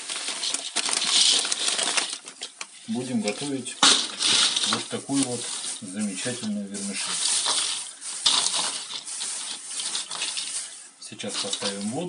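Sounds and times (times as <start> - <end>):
dry pasta rattling: 0.0 - 12.0
plastic bag crinkling: 0.0 - 12.0.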